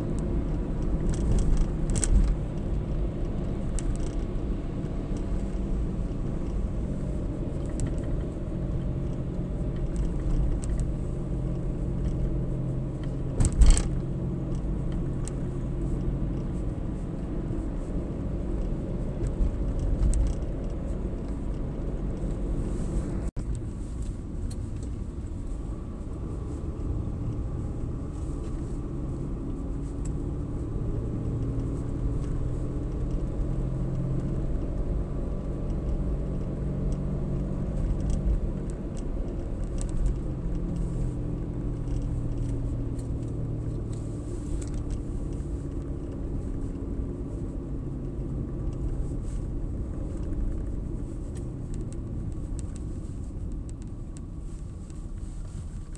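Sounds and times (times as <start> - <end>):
car engine and tyre noise: 0.0 - 55.9.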